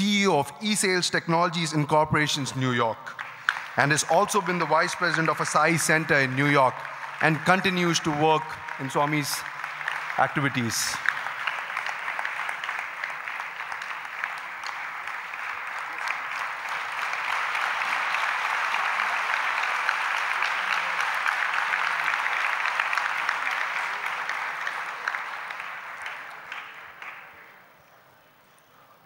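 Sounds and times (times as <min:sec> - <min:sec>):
large audience applauding: 0:01.5 - 0:27.7.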